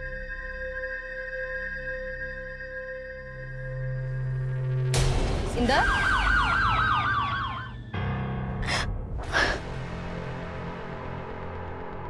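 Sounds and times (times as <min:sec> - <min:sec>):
low music drone: 0:00.0 - 0:12.0
police siren yelping: 0:05.8 - 0:07.9
breathy bursts: 0:08.6 - 0:09.8.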